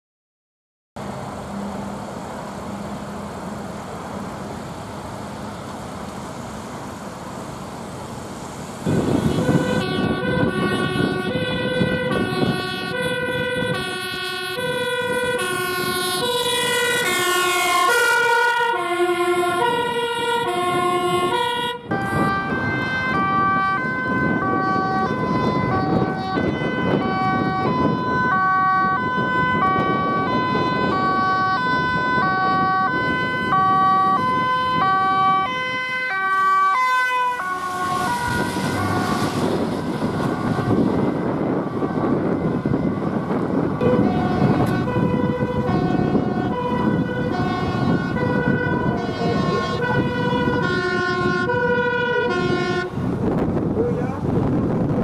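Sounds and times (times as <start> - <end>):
tyres on wet road: 1.0 - 55.0
vehicle engine: 1.0 - 55.0
two-tone sirens: 8.8 - 55.0.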